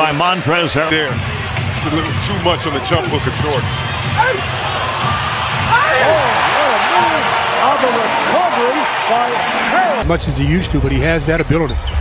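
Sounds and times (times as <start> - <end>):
crowd cheering: 0.0 - 12.0
voices shouting: 2.5 - 10.0.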